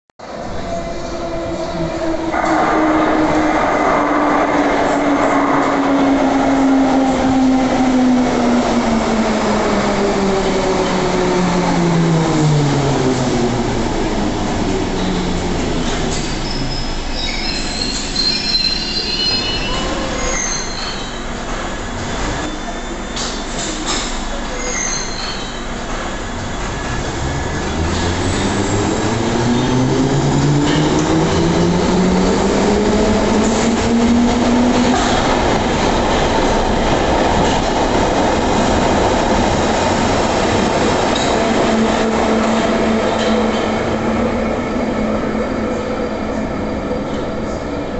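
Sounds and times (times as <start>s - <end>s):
wheels rumbling on rail: 0.2s - 47.9s
high-pitched brake squeals: 16.1s - 21.4s, 24.5s - 26.5s.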